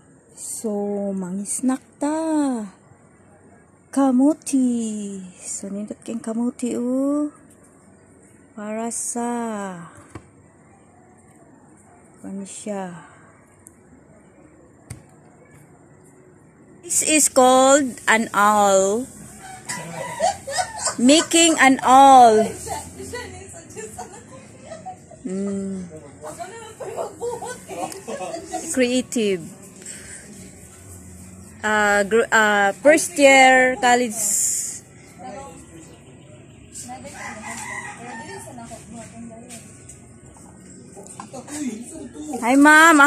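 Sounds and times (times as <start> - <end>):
wavering animal call: 19.3 - 21.0.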